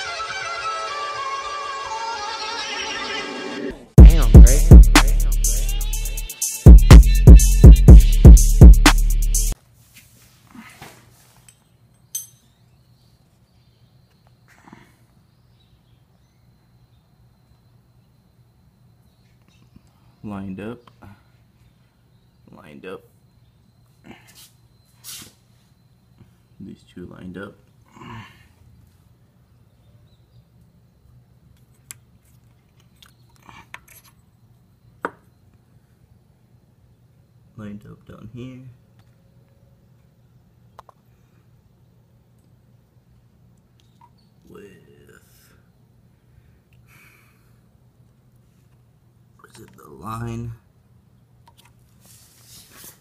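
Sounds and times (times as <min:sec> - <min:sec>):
steady low hum: 0:04.0 - 0:09.6.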